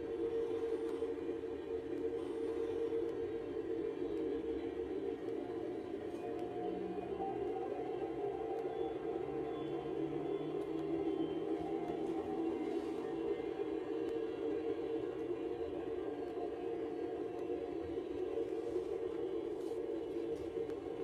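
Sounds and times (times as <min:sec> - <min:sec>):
dense drone with echo: 0:00.0 - 0:21.0.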